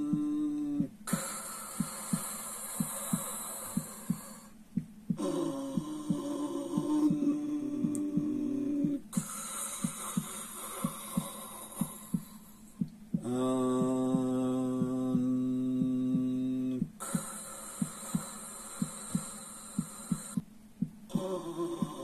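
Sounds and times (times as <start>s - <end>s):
breathy breathing hiss: 0.0s - 20.4s, 21.1s - 22.0s
heartbeat thumps: 0.0s - 22.0s
man chanting low note: 5.2s - 9.0s, 13.2s - 16.9s.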